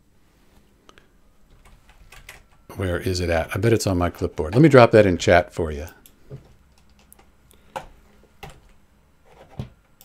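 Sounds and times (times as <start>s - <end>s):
clicks at a computer: 5.8s - 8.8s.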